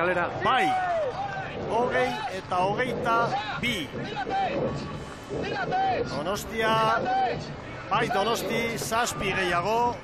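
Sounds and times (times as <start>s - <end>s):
man talking: 1.6s - 4.6s, 5.4s - 10.0s.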